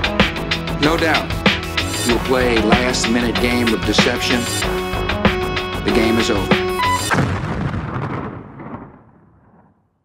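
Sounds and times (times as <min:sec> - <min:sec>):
explosion boom: 0:07.0 - 0:10.0.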